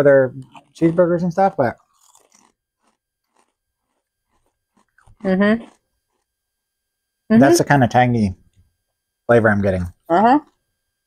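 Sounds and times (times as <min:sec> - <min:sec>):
potato chips crunching: 0:00.4 - 0:06.2.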